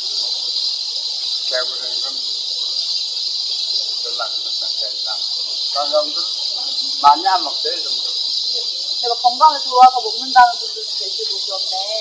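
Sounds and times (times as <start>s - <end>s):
cicadas droning: 0.0s - 12.0s.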